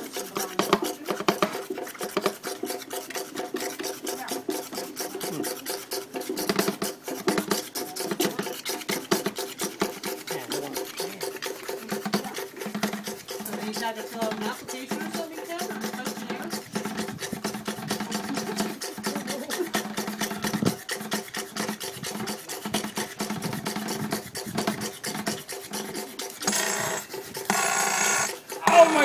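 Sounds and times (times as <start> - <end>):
vacuum pump ticking and humming: 6.4 - 29.0.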